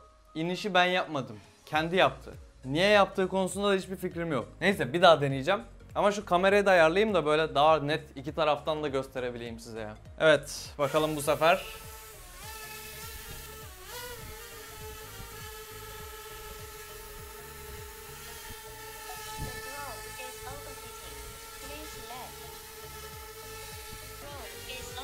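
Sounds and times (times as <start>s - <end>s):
drone propellers whining: 11.8s - 25.0s.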